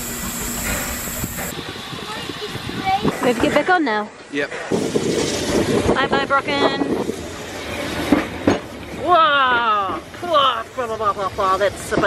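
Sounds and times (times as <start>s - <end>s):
train carriage running noise: 0.0s - 12.0s.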